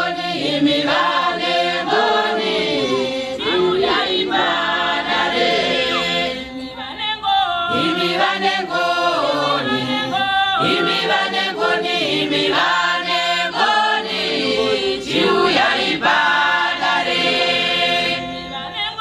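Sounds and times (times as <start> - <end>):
congregation singing a hymn: 0.0 - 6.7, 7.4 - 19.0.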